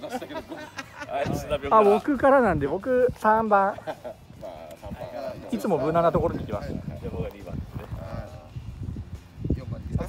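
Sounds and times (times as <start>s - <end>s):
men murmuring: 0.0s - 8.8s.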